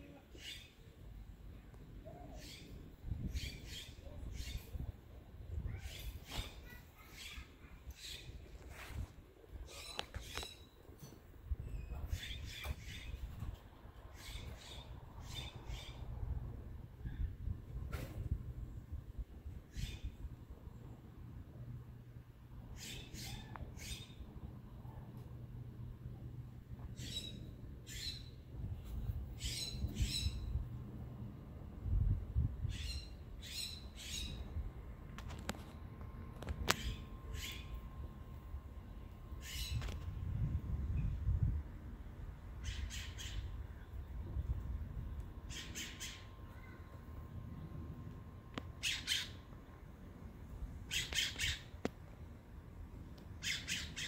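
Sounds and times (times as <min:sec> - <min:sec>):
low background rumble: 0:10.4 - 0:51.0.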